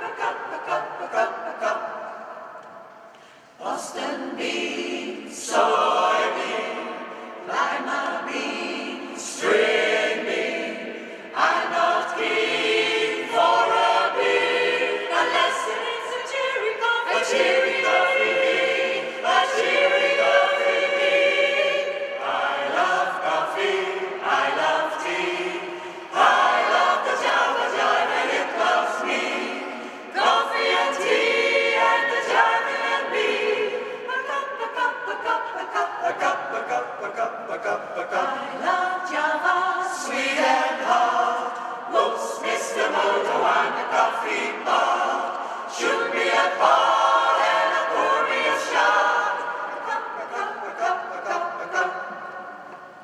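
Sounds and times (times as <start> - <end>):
mixed choir singing a cappella: 0.0 - 53.0.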